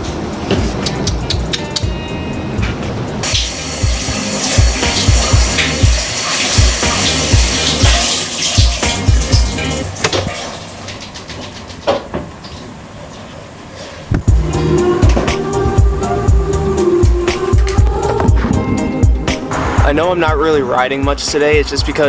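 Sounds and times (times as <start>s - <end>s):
background music with bass beat: 0.0s - 10.1s, 14.2s - 22.0s
shower running: 3.2s - 13.1s.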